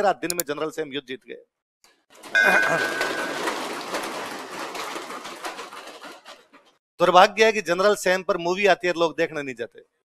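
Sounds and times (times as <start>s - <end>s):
students applauding: 2.4s - 6.1s.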